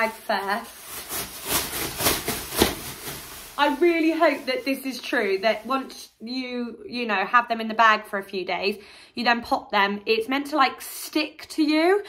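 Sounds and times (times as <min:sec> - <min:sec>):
plastic bag crinkling: 0:00.0 - 0:06.0.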